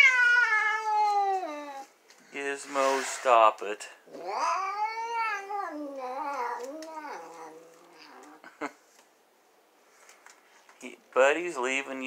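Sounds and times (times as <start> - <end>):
cat yowling: 0.0 - 1.9, 4.1 - 8.4.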